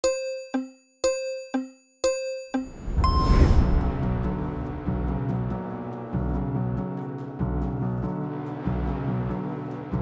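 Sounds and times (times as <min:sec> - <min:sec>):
countdown chimes: 0:00.0 - 0:03.8
music with whoosh and deep bass: 0:02.8 - 0:10.0.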